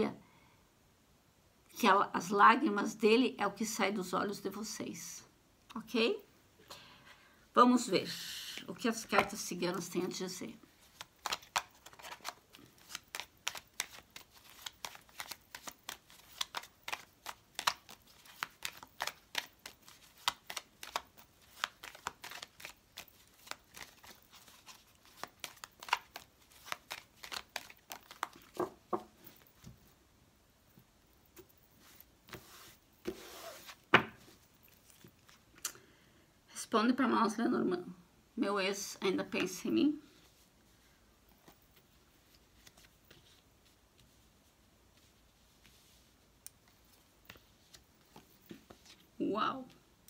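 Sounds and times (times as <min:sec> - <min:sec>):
cards being shuffled: 0:10.7 - 0:29.8, 0:31.3 - 0:35.4, 0:41.4 - 0:44.2, 0:45.0 - 0:49.1.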